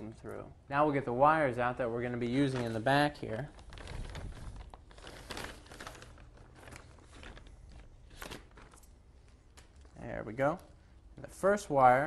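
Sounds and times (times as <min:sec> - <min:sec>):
plastic bag crinkling: 0:02.2 - 0:10.8.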